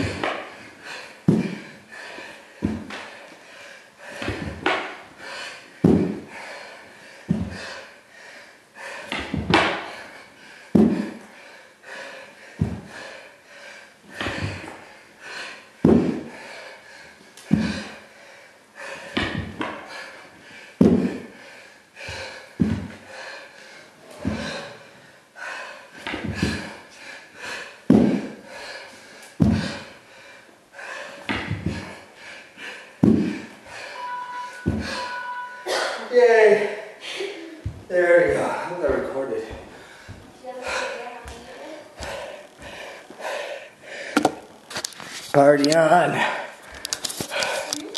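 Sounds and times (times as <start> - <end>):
heavy breathing: 0.0 - 45.1, 46.1 - 47.9
body thudding on wooden floor: 34.6 - 35.0.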